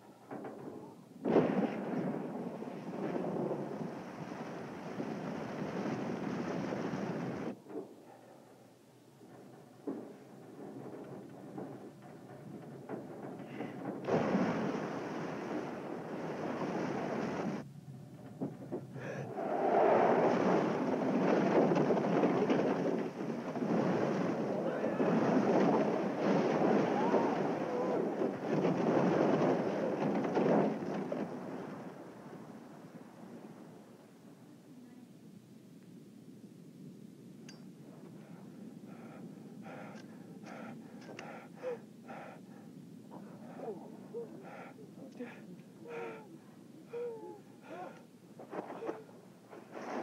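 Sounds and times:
avalanche rush of snow: 0:01.2 - 0:07.6, 0:13.5 - 0:17.7, 0:19.0 - 0:34.0, 0:38.0 - 0:42.4, 0:47.6 - 0:50.0
people gasping for breath: 0:13.4 - 0:14.2, 0:18.9 - 0:19.4, 0:38.0 - 0:49.1.

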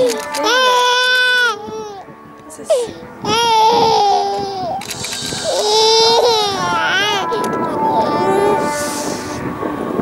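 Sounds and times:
baby crying: 0:00.0 - 0:02.1, 0:02.7 - 0:08.8.

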